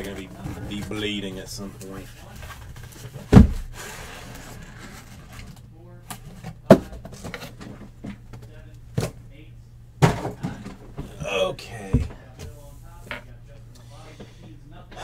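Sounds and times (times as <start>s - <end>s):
boxes thudding onto a stack: 3.2s - 3.7s.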